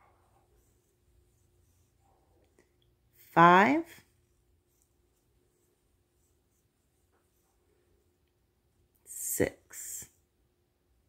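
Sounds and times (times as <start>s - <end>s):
soft rustles of yarn: 0.0s - 11.0s.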